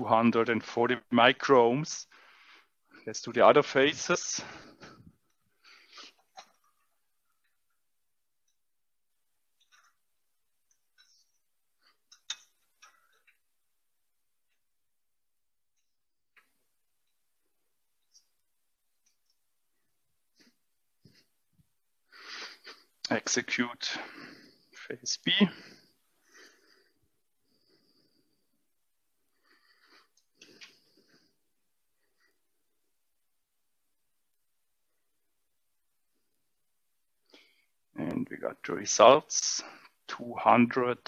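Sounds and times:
faint breaths: 2.0s - 3.2s, 4.2s - 7.6s, 19.2s - 23.1s, 23.8s - 32.7s, 37.2s - 38.0s.

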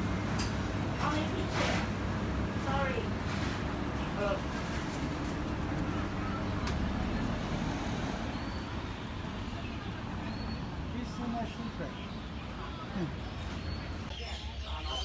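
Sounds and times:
faint voices: 5.5s - 15.0s.

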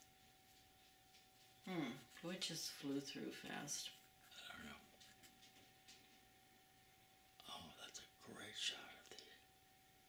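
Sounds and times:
person whispering: 4.2s - 5.0s, 7.4s - 9.4s.

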